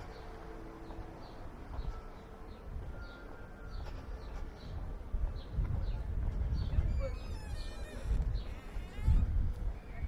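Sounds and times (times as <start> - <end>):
wind buffeting microphone: 1.4 - 10.0.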